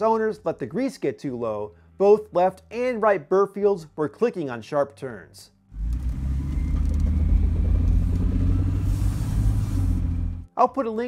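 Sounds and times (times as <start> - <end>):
car engine rumbling inside cab: 5.8 - 10.5.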